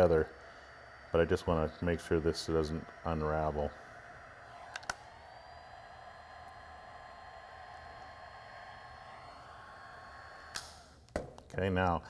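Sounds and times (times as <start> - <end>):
hot knife whining: 0.0 - 11.0.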